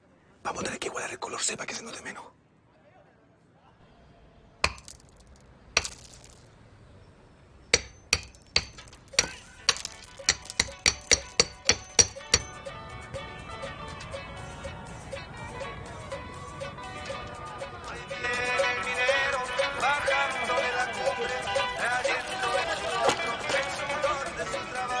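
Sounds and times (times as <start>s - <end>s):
hammer blows ringing: 4.6s - 5.2s, 7.7s - 15.3s
background music: 7.8s - 25.0s.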